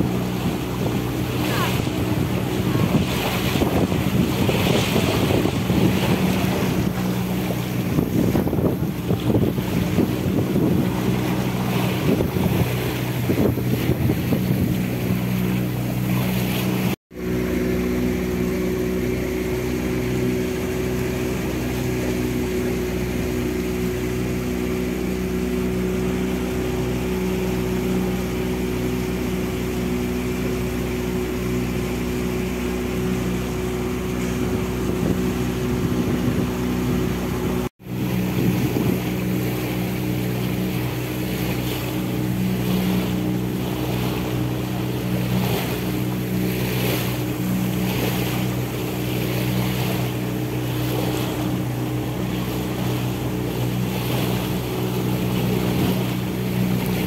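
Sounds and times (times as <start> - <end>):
motorboat engine humming: 0.0 - 57.0
water splashing along hull: 0.0 - 57.0
wind on microphone: 0.0 - 57.0.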